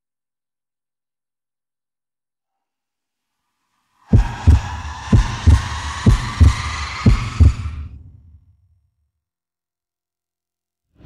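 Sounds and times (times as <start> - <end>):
kick drum double thumps: 4.2 - 7.6.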